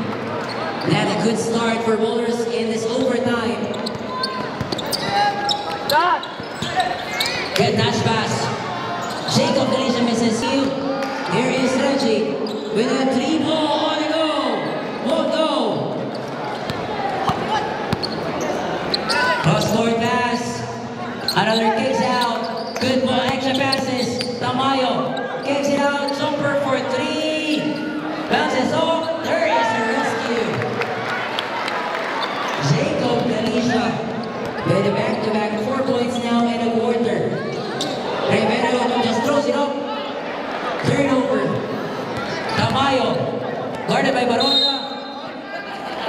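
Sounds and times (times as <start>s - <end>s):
crowd voices and shouts: 0.0s - 46.0s
basketball bouncing on court: 3.0s - 8.1s, 16.5s - 18.4s, 22.6s - 24.5s, 42.1s - 43.0s.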